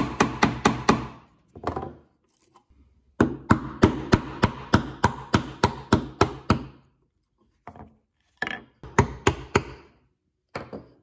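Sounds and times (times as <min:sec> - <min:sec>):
chisel strikes on wood: 0:00.0 - 0:01.8, 0:03.2 - 0:06.8, 0:08.4 - 0:11.0.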